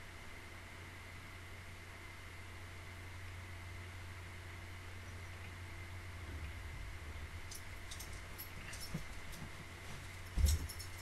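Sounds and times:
faint high whine: 0.0s - 11.0s
steady low hum: 0.0s - 11.0s.

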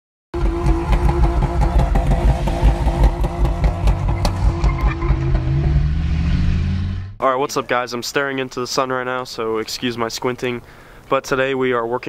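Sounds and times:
car engine revving: 0.4s - 7.2s.

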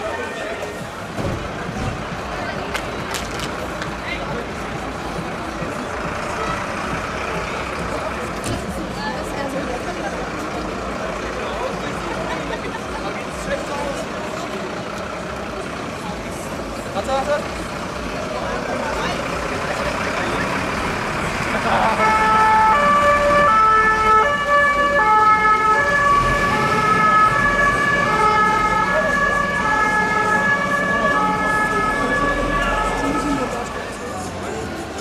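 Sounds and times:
crowd noise: 0.0s - 35.0s
two-tone emergency siren: 22.0s - 33.7s.

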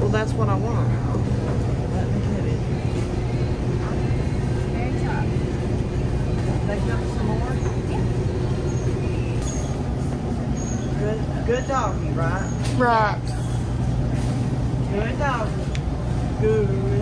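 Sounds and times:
refrigeration hum: 0.0s - 17.0s.

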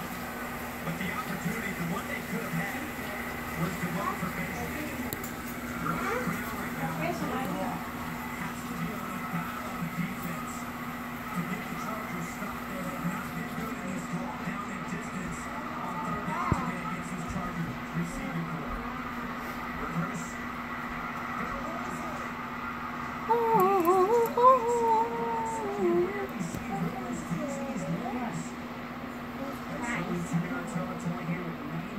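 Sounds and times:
faint television speech: 0.0s - 31.9s
steady low hum: 0.0s - 31.9s
television music: 0.0s - 31.9s.

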